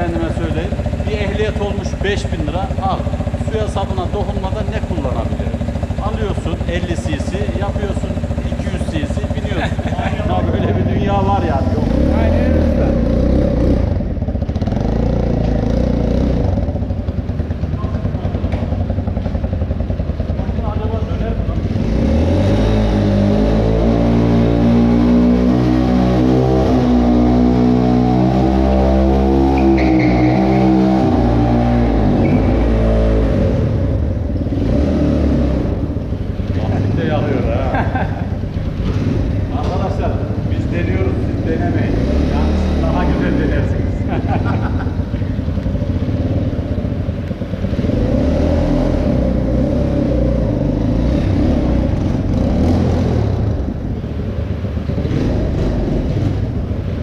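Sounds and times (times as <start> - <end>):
motorcycle engine running and revving: 0.0 - 57.0.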